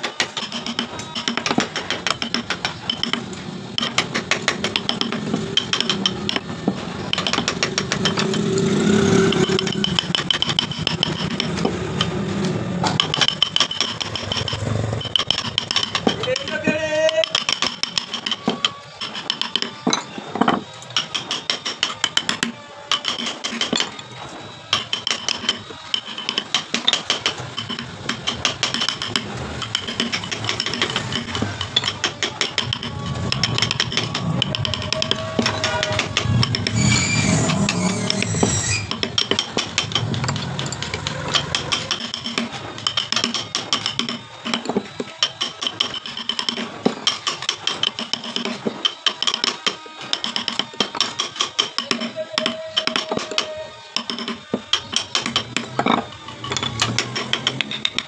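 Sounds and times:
mallet tapping chisel into wood: 0.4s - 6.5s, 7.1s - 8.4s, 15.1s - 23.9s
rasp filing wood: 26.0s - 42.6s
low engine-like hum: 29.0s - 42.2s.

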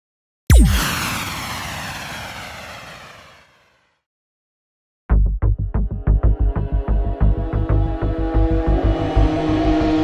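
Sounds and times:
heavy cinematic hit: 0.5s - 3.1s
rushing noise: 0.5s - 3.8s.

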